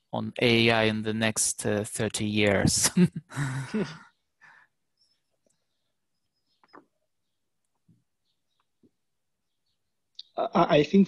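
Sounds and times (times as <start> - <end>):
person laughing breathily: 2.8 - 4.1.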